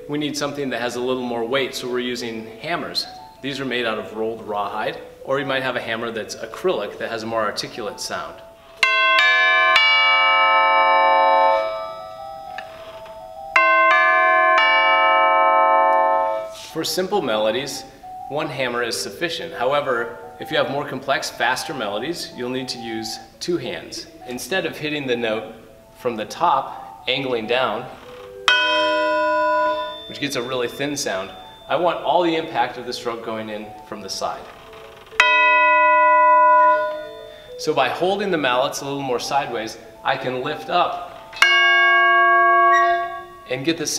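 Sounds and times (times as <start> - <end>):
tubular bells struck: 13.6 - 16.6, 28.5 - 32.9, 35.2 - 37.4, 41.4 - 43.7.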